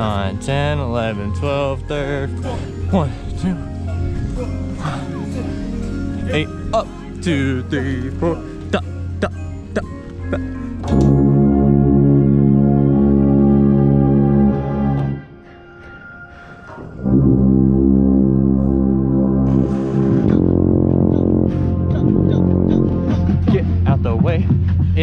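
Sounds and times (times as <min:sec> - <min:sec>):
brass line playing: 0:00.0 - 0:15.4, 0:17.0 - 0:23.8
low bugle notes: 0:10.2 - 0:16.0, 0:16.8 - 0:23.8.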